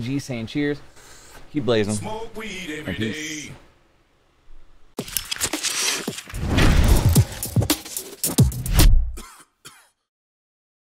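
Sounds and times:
person coughing: 0:09.2 - 0:10.0.

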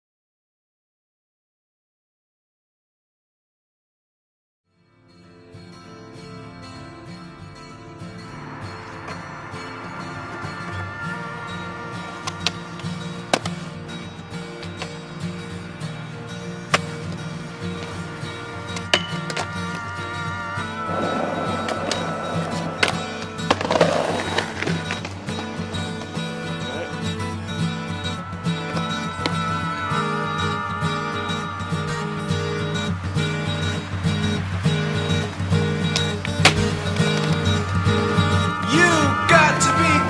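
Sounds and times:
acoustic guitar music: 0:04.7 - 0:40.0
skateboard rolling on concrete: 0:07.3 - 0:40.0
skateboard pops and landings: 0:36.4 - 0:37.3.

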